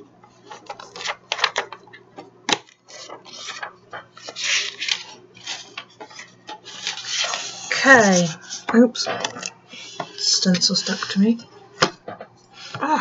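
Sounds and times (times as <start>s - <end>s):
paper pages rustling and turning: 0.4s - 1.9s, 2.5s - 11.9s.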